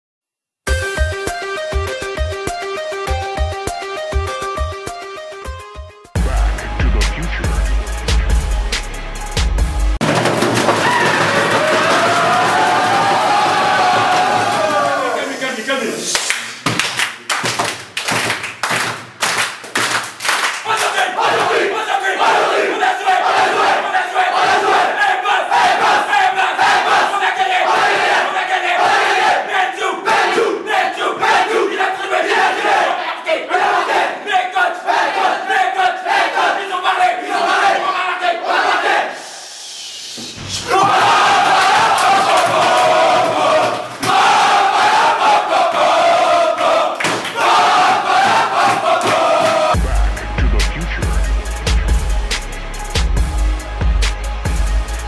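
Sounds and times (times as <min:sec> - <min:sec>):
sharp rhythmic beats: 0:00.7 - 0:22.5, 0:40.7 - 0:55.0
team war cry: 0:11.0 - 0:15.3, 0:20.6 - 0:39.3, 0:40.6 - 0:49.8
group chanting in unison: 0:20.6 - 0:50.3.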